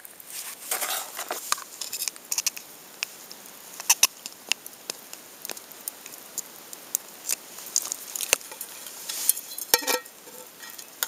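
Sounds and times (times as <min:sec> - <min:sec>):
light ticks and crackles: 0:00.0 - 0:11.0.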